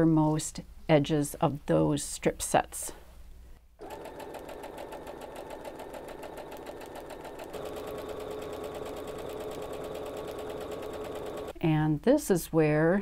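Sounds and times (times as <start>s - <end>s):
sewing machine stitching: 3.8s - 11.6s.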